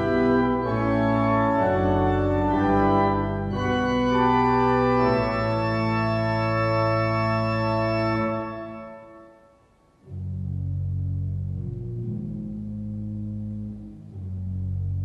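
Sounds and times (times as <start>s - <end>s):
pipe organ chords: 0.0s - 15.0s.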